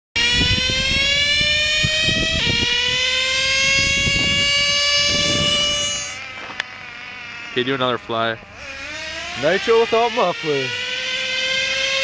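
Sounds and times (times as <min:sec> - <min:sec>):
model car engine whining: 0:00.2 - 0:12.0.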